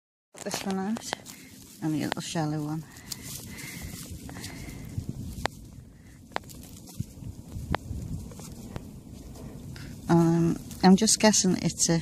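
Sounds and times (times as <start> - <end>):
hands crumbling dry soil: 0.4 - 12.0.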